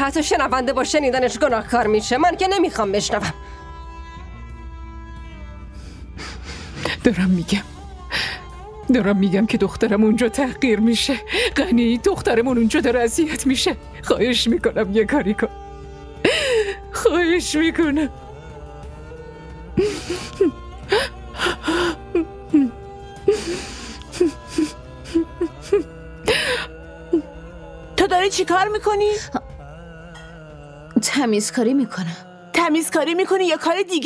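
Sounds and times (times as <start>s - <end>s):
soft background music: 0.0s - 34.0s
soft background score: 0.0s - 34.0s
woman sobbing: 16.2s - 18.2s, 19.7s - 29.6s.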